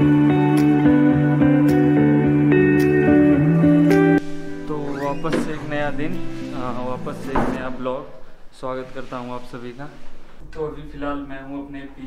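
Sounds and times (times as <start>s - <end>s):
man speaking: 4.6s - 12.0s.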